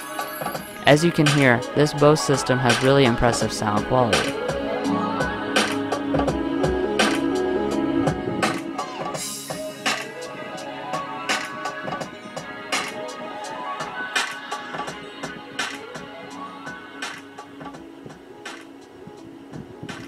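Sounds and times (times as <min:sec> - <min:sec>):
music playing in car: 0:00.0 - 0:20.0.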